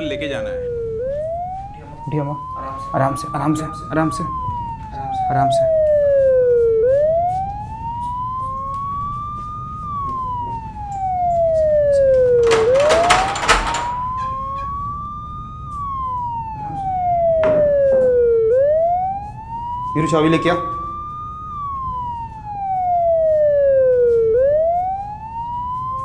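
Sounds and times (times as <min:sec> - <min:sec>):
emergency siren wailing: 0:00.0 - 0:26.0
rattling clatter: 0:12.4 - 0:14.8.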